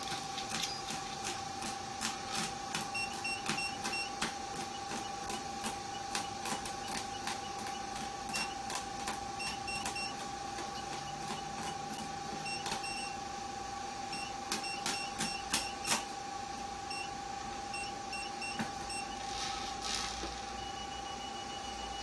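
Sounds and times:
steady high machine tone: 0:02.1 - 0:22.0.

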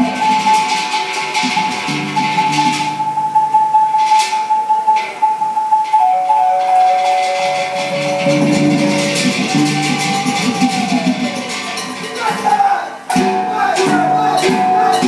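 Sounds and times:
held high note: 0:00.0 - 0:15.0
low gong tones: 0:05.8 - 0:10.5.

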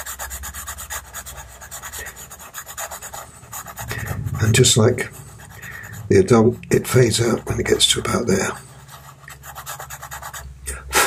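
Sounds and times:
pencil scratching on paper: 0:00.0 - 0:03.8, 0:08.3 - 0:10.5.

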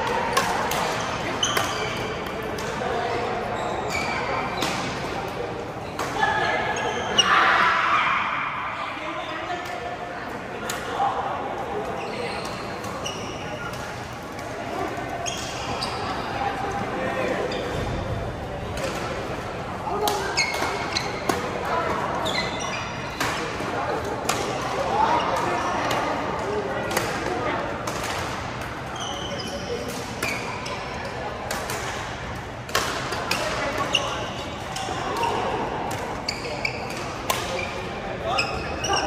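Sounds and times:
murmur of voices: 0:00.0 - 0:39.0
shoes squeaking on floor: 0:01.0 - 0:02.2, 0:03.5 - 0:04.7, 0:11.9 - 0:13.9, 0:15.2 - 0:16.4, 0:20.2 - 0:23.2, 0:28.9 - 0:30.9, 0:33.6 - 0:34.6, 0:36.2 - 0:39.0.

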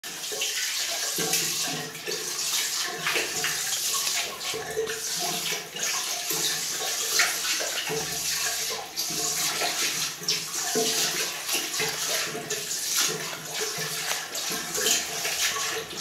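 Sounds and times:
puppy lapping water: 0:00.0 - 0:16.0
water jet splashing into bowl: 0:00.0 - 0:16.0.

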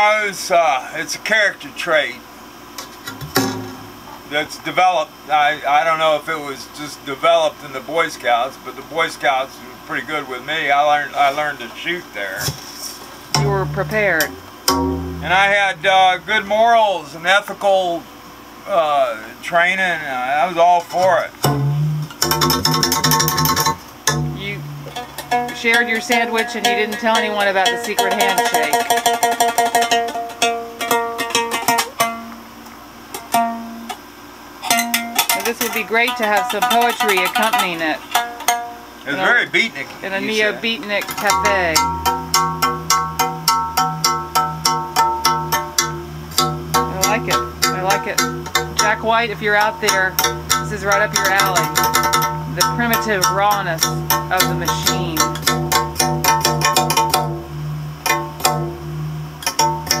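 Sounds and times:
plucked string instrument: 0:02.8 - 0:04.2, 0:13.3 - 0:17.0, 0:21.0 - 0:34.0, 0:34.6 - 1:00.0
steady low drone: 0:13.3 - 0:17.2, 0:21.4 - 0:25.7, 0:40.6 - 1:00.0.

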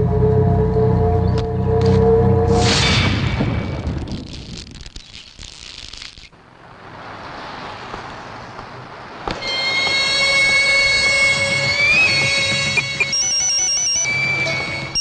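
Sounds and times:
noisy rushing sound: 0:06.3 - 0:09.8
high drone-like held tones: 0:09.4 - 0:15.0.

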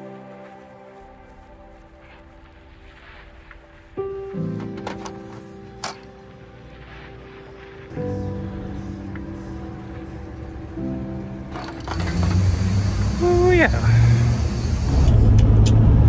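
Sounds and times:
background music with held notes: 0:00.0 - 0:16.0
low rumble of outdoor noise: 0:00.0 - 0:16.0.

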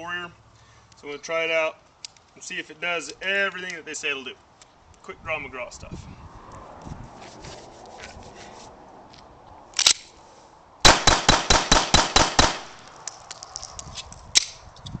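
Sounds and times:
light gun clicks: 0:09.8 - 0:10.1
pistol click: 0:09.8 - 0:10.1, 0:10.9 - 0:14.6
pistol gunshots: 0:10.8 - 0:12.9.

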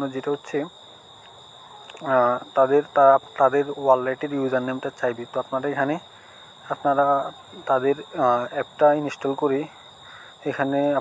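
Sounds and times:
man talking: 0:00.0 - 0:00.7, 0:02.0 - 0:06.0, 0:06.6 - 0:09.8, 0:10.4 - 0:11.0
faint high-pitched whine: 0:00.0 - 0:11.0.

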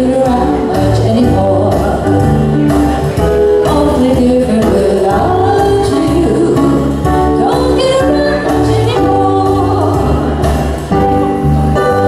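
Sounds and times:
electronic keyboard: 0:00.0 - 0:12.0
guitar: 0:00.0 - 0:12.0
person singing: 0:03.6 - 0:12.0.

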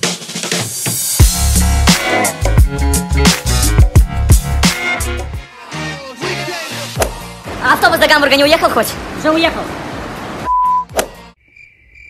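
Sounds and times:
loud steady beep: 0:10.5 - 0:10.9
crickets chirping: 0:11.4 - 0:12.0.

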